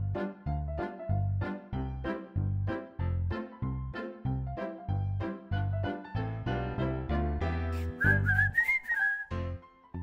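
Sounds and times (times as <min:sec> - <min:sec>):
whistled melody: 0:07.7 - 0:09.8.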